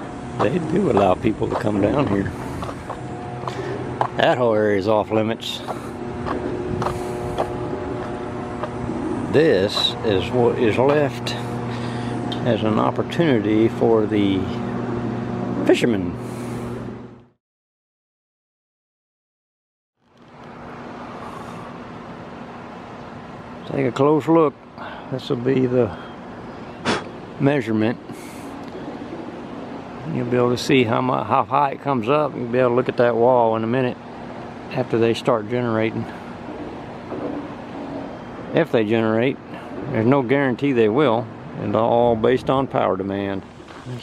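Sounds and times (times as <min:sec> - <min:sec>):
outdoor background rumble: 0:00.0 - 0:17.4, 0:20.0 - 0:44.0
steady electrical hum: 0:00.0 - 0:17.4, 0:20.0 - 0:44.0
footsteps on concrete walkway: 0:00.4 - 0:04.5, 0:05.5 - 0:09.0, 0:43.6 - 0:44.0.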